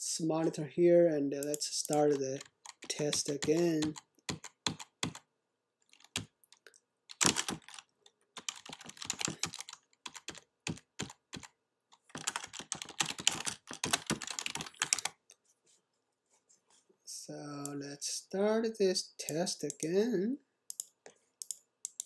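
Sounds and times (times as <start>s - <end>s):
keyboard typing: 1.4s - 5.2s, 5.8s - 15.2s.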